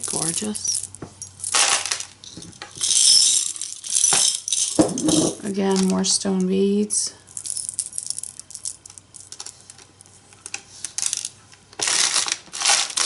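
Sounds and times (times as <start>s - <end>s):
beads clattering in plastic tub: 0.0s - 6.2s, 7.3s - 13.0s.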